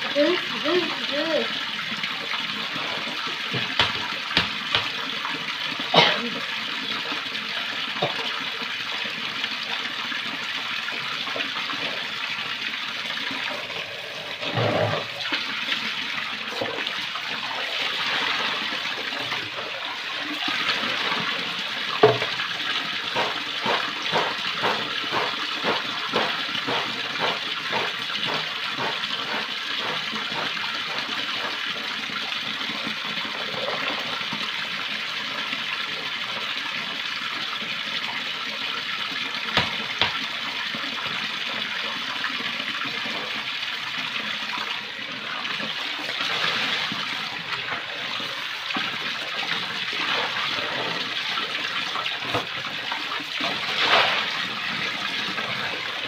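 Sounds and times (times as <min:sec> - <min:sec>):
basins sloshed and rinsed: 0:00.0 - 0:56.0
tap water pouring into basin: 0:00.0 - 0:56.0.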